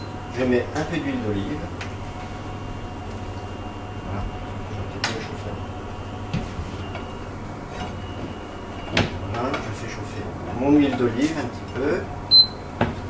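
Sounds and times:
kitchen equipment humming: 0.0s - 13.0s.

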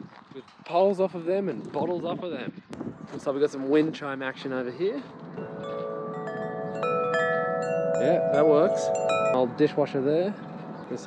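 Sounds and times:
wind chime tubes ringing: 5.4s - 11.0s.

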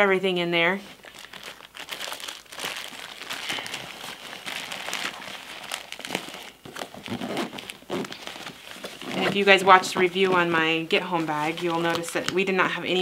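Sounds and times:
plastic packaging rustling: 0.7s - 13.0s.

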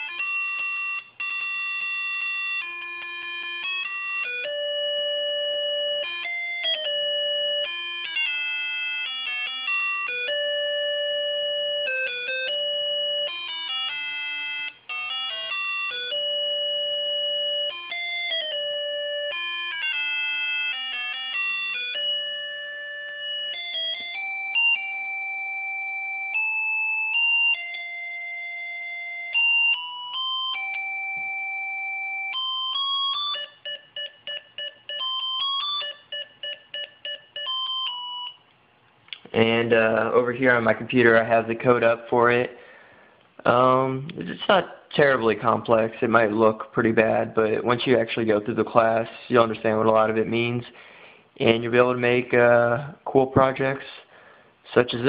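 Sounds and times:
electronic synthesizer melody: 0.0s - 38.4s.

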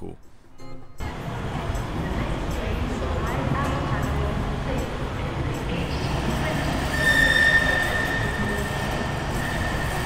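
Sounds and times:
tram running noise: 1.0s - 10.0s
high-pitched wheel squeal: 6.5s - 10.0s.

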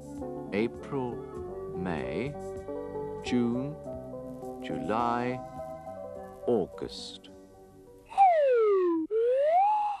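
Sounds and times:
cartoon swooping whistle tone: 8.1s - 10.0s.

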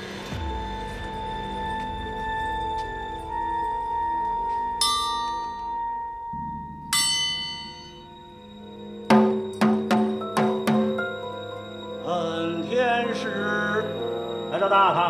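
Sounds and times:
soundtrack music with held tones: 0.0s - 15.0s
ringing bell strikes: 4.8s - 12.5s
hand drum beating: 9.1s - 11.2s.

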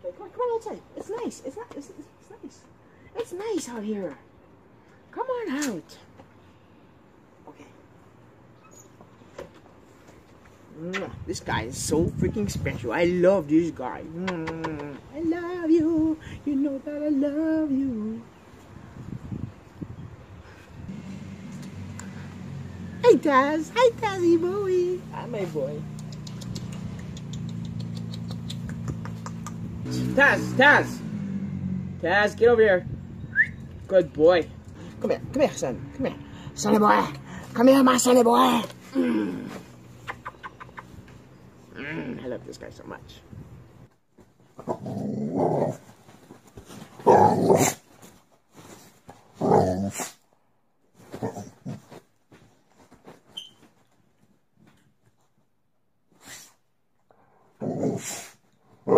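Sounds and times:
quick irregular clicks: 25.9s - 29.7s.

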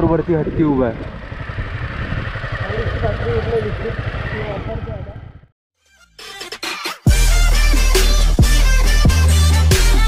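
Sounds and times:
motorcycle engine running: 0.0s - 5.5s
wind and road noise: 0.0s - 5.5s.

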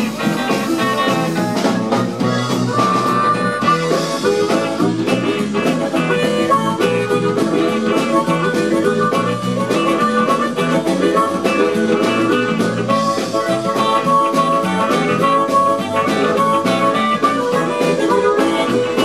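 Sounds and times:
bass: 0.0s - 19.0s
drums: 0.0s - 19.0s
electric guitar: 0.0s - 19.0s
harmonica lead: 0.0s - 19.0s
keyboard: 0.0s - 19.0s.

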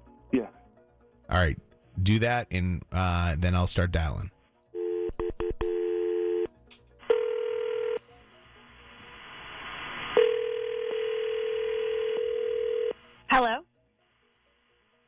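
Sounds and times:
telephone dial tone: 4.8s - 6.5s, 7.1s - 8.0s, 10.2s - 13.0s
telephone ringing tones: 4.8s - 6.5s, 7.1s - 8.0s, 10.2s - 13.0s
telephone line hiss: 9.1s - 13.0s.

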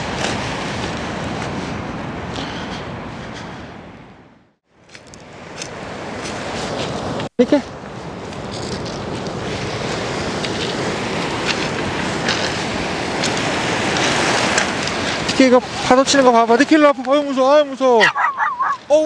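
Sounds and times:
waves breaking on pebble beach: 0.0s - 2.2s, 4.9s - 19.0s.

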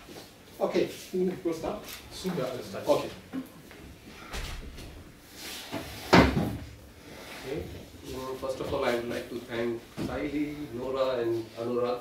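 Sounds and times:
faint shuffling: 0.0s - 6.0s, 7.0s - 12.0s
chair bumping against table: 5.7s - 6.8s.

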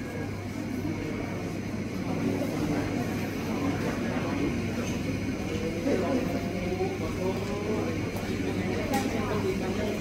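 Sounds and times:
murmur of crowd talking: 0.0s - 10.0s.

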